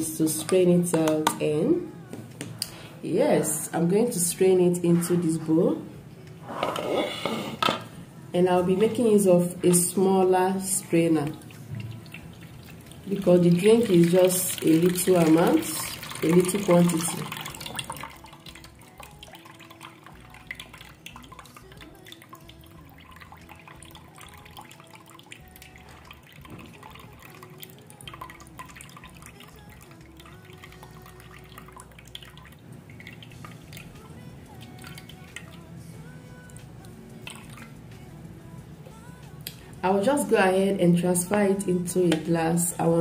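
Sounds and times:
soft background music: 0.0 - 43.0
juice trickling and dripping: 10.8 - 38.4.

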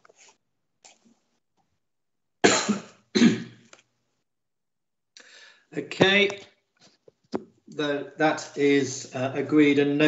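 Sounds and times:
person coughing: 2.4 - 3.6.

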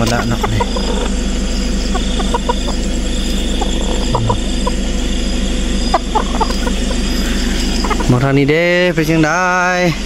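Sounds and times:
chickens clucking: 0.0 - 9.7
low engine hum: 0.0 - 10.0.

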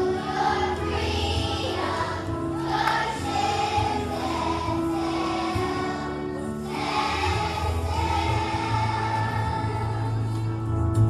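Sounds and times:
children's choir singing: 0.0 - 10.6.

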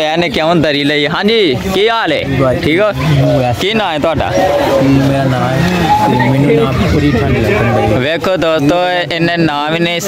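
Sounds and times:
young men talking and calling: 0.0 - 10.0.

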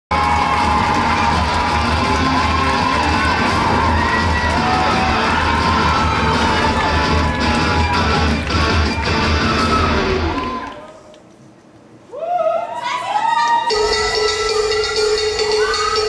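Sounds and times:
loud music: 0.1 - 10.6, 13.7 - 16.0
audience cheering and whooping: 0.1 - 11.1, 12.0 - 14.2.

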